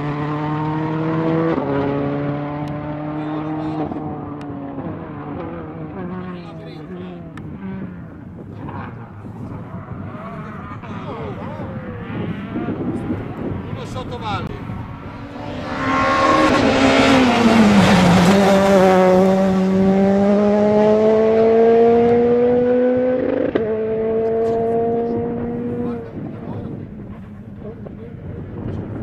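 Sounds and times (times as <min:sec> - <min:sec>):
rally car engine passing: 0:00.0 - 0:29.0.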